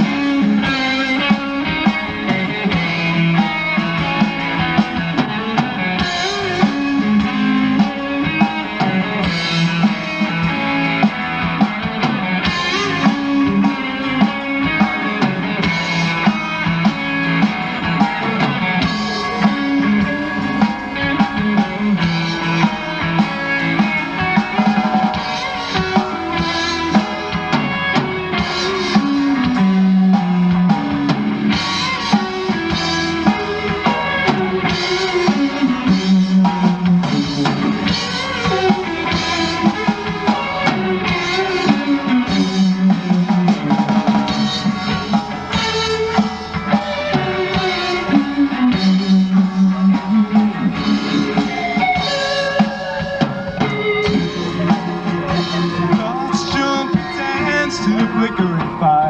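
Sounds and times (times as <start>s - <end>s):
drum kit beat: 0.0s - 59.0s
electric guitars: 0.0s - 59.0s.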